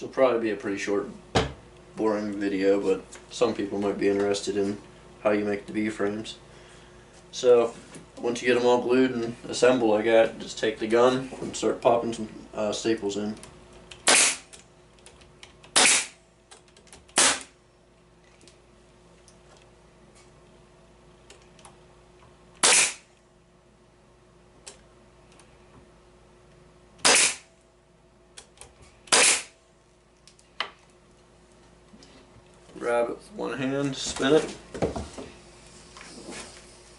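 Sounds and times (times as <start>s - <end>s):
pneumatic staple gun shots: 14.0s - 14.6s, 15.7s - 16.2s, 17.1s - 17.6s, 22.6s - 23.1s, 27.0s - 27.5s, 29.1s - 29.6s.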